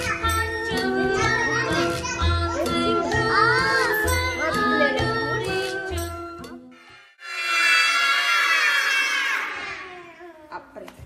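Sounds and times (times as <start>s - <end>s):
children shouting: 7.2s - 10.2s.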